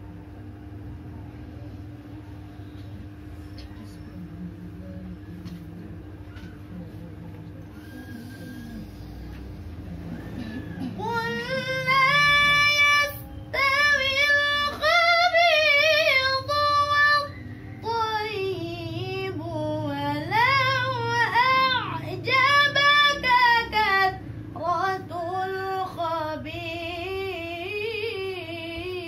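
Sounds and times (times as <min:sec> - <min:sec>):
woman chanting melodically: 0:10.0 - 0:29.0.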